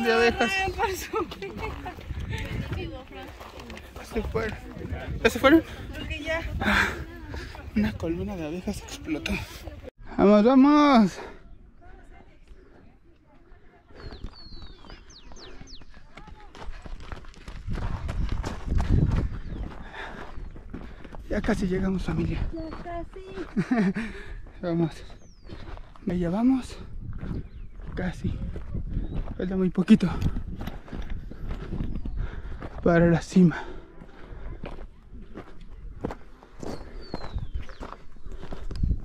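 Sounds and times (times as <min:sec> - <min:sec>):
footsteps crunching on gravel: 0:00.0 - 0:06.2, 0:14.0 - 0:23.9, 0:30.2 - 0:39.0
wind: 0:00.0 - 0:39.0.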